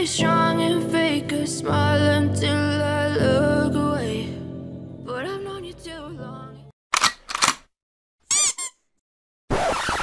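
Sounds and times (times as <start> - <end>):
pop song singing: 0.0 - 6.7
squeaky chirp: 8.3 - 8.9.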